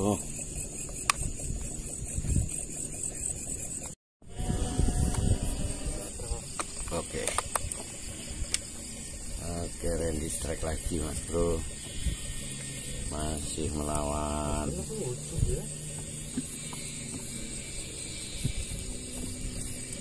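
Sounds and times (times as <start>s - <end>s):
high-pitched hiss: 0.0s - 20.0s.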